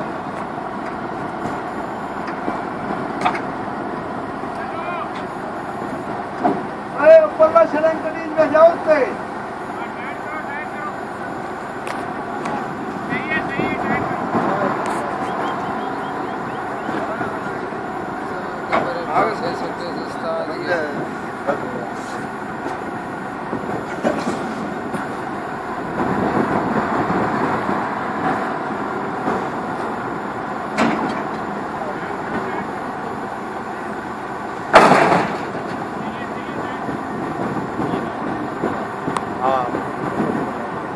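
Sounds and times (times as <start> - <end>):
crane diesel engine running: 0.0 - 40.9
workers calling out: 0.4 - 26.0, 28.9 - 40.9.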